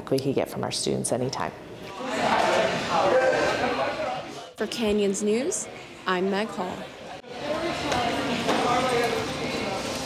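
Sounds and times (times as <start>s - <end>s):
indistinct chatter of people: 1.8s - 10.0s.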